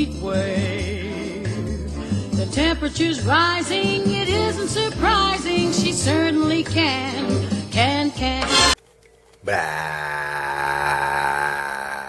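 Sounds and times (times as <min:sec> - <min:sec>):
man's throaty vocal sound: 0:09.5 - 0:12.0.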